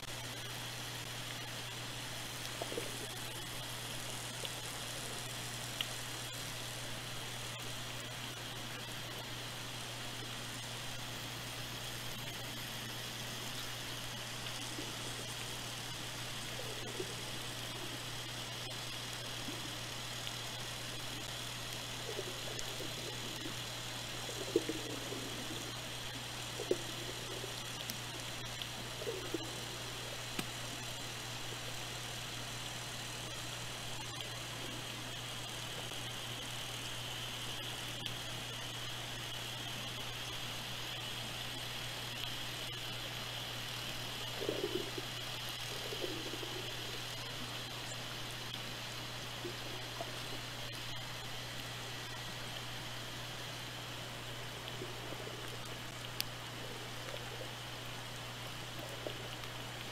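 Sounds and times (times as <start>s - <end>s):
hydrophone hum and hiss: 0.0s - 59.9s.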